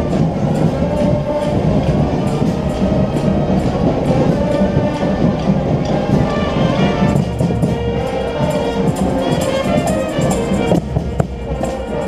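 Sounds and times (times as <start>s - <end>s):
drums beating march cadence: 0.0s - 12.0s
marching band playing: 0.0s - 12.0s.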